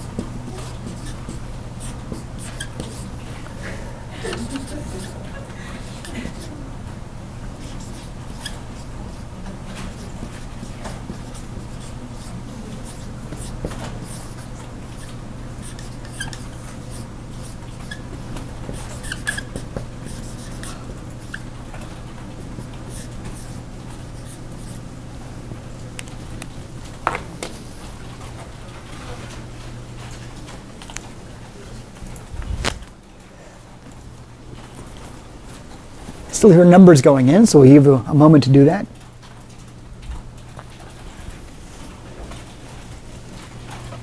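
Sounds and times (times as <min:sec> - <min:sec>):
marker squeaking on whiteboard: 0:00.0 - 0:03.2, 0:04.2 - 0:05.2, 0:07.6 - 0:21.9, 0:22.6 - 0:24.8
low room hum: 0:00.0 - 0:44.0.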